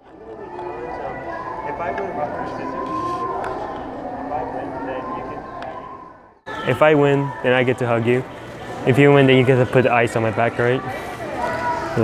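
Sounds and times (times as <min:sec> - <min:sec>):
indistinct voices: 0:00.0 - 0:12.0.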